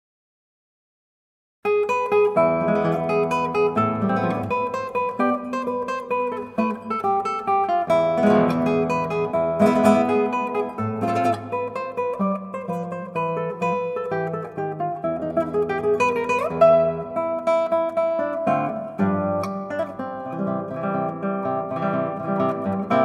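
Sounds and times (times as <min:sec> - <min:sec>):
flamenco acoustic guitar: 0:01.7 - 0:23.0.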